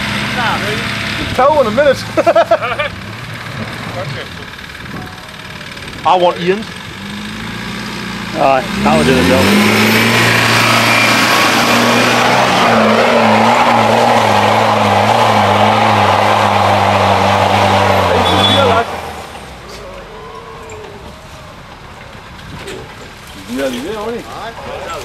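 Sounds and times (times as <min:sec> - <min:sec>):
vehicle engine running: 0:00.0 - 0:20.1
outdoor noise: 0:00.0 - 0:25.0.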